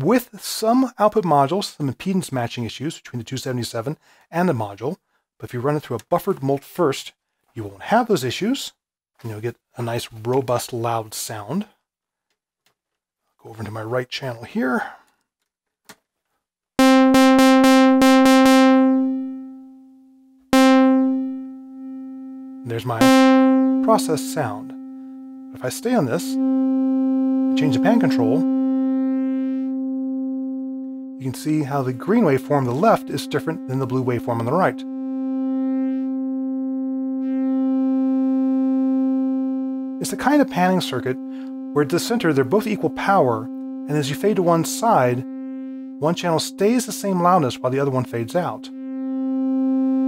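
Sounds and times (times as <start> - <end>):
synthesizer note: 16.8 - 19.7, 20.5 - 50.0.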